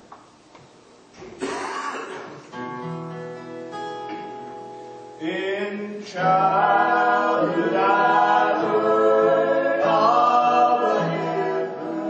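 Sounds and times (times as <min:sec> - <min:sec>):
acoustic guitar strumming chords: 0:01.4 - 0:12.0.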